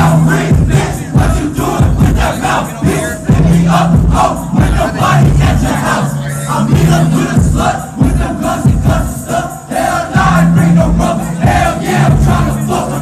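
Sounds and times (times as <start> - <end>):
crowd shouting along: 0.0 - 13.0
hip-hop music through pa: 0.0 - 13.0.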